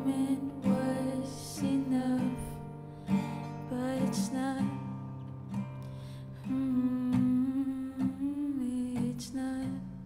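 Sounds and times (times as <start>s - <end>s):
acoustic guitar: 0.0s - 10.0s
person humming a melody: 6.4s - 9.8s.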